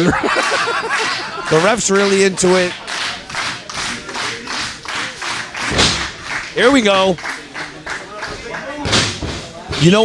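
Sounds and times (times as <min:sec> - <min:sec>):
crowd clapping in rhythm: 0:00.0 - 0:08.9
heavy thump: 0:05.6 - 0:06.2, 0:08.9 - 0:10.0.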